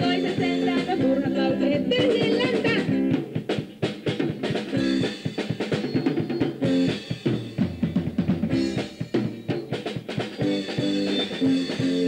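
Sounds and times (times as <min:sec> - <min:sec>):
drum kit playing: 0:00.0 - 0:12.0
live rock band playing: 0:00.0 - 0:12.0.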